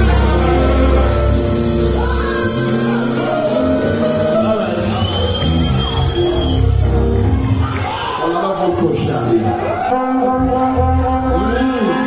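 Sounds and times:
congregation shouting and cheering: 0.0 - 12.0
gospel band playing: 0.0 - 12.0.

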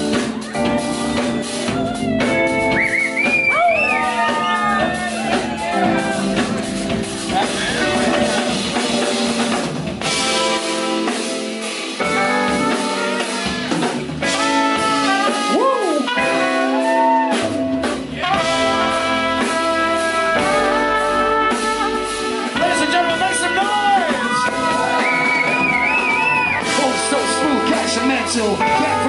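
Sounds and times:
bass: 0.0 - 29.0
drum kit: 0.0 - 29.0
electric guitar: 0.0 - 29.0
trumpet melody: 12.0 - 29.0.

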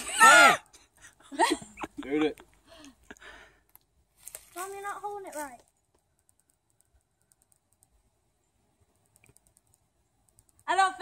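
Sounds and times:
high-pitched ticking: 5.6 - 8.1, 8.9 - 11.0.

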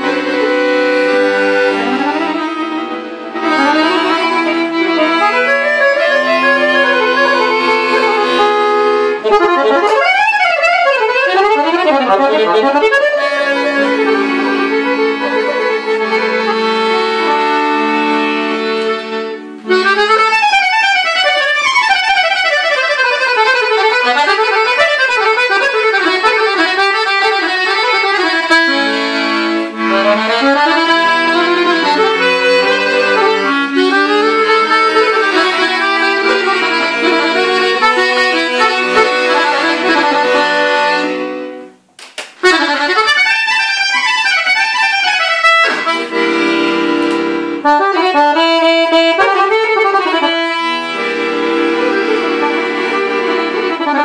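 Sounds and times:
button accordion playing: 0.0 - 54.0.

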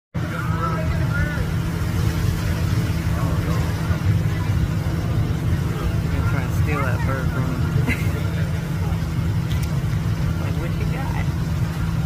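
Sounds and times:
faint indistinct voices: 0.2 - 12.0
low rumble: 0.2 - 12.0.

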